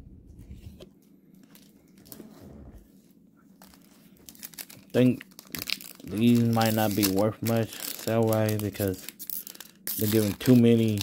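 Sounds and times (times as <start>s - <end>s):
plastic wrapping crinkling: 3.6s - 11.0s.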